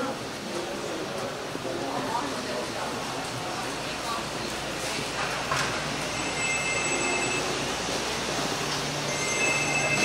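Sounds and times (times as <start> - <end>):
market hubbub: 0.0 - 10.0.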